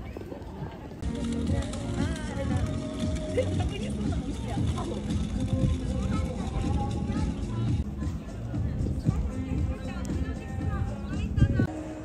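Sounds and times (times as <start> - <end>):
people talking: 0.0 - 11.7.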